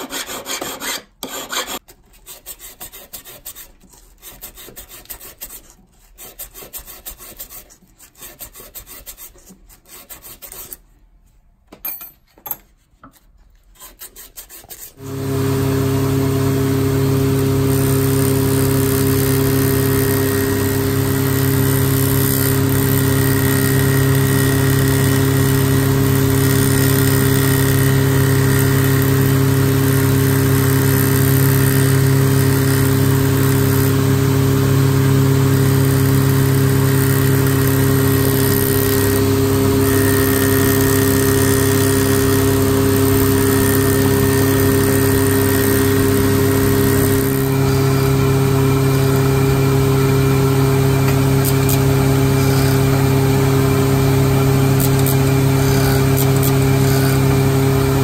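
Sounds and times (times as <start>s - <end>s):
cutting machine hum and whir: 15.0s - 58.0s.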